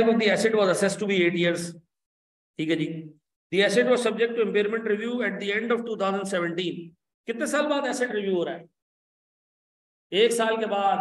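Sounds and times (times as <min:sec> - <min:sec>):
man speaking: 0:00.0 - 0:01.9, 0:02.6 - 0:08.8, 0:10.1 - 0:11.0.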